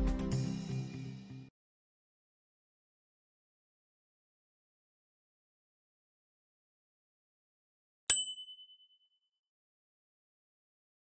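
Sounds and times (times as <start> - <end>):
bright bell ding: 8.1 - 9.0.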